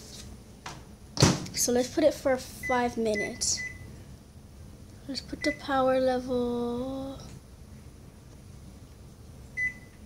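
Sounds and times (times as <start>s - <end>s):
faint low room hum: 0.0s - 10.0s
microwave keypad beep: 2.6s - 3.9s, 5.4s - 5.7s, 9.6s - 10.0s.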